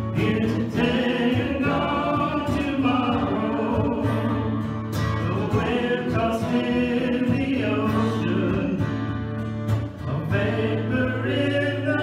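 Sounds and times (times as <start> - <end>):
group singing gospel song: 0.0 - 9.3, 10.0 - 12.0
acoustic guitar: 0.0 - 12.0.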